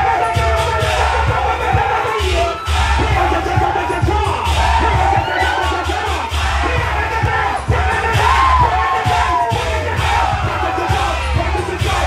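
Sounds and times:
crowd yelling and cheering: 0.0s - 12.0s
dance music with heavy bass: 0.0s - 12.0s.

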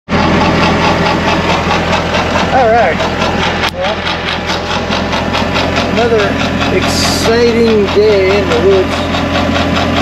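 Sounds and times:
loader engine running: 0.1s - 10.0s.

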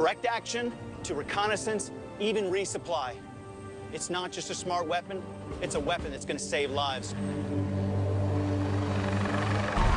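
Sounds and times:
helicopter turbine and rotor hum: 6.8s - 9.9s.

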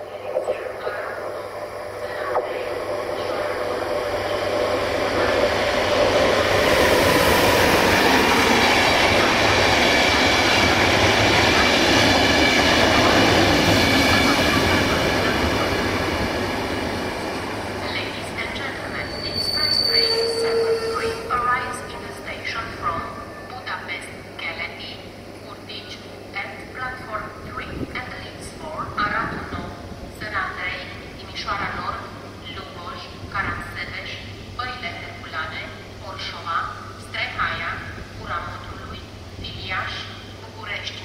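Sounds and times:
passenger train passing: 0.0s - 41.0s
train wheels squealing: 18.9s - 21.4s.

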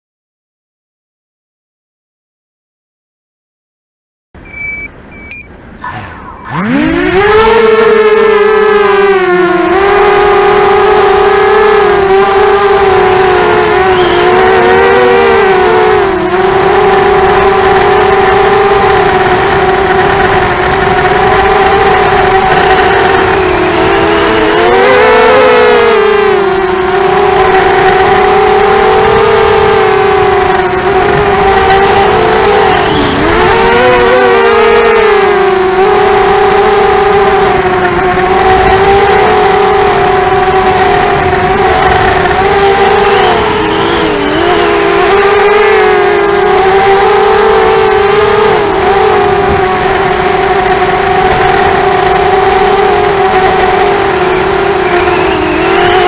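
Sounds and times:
quadcopter motors whining: 4.4s - 56.0s.

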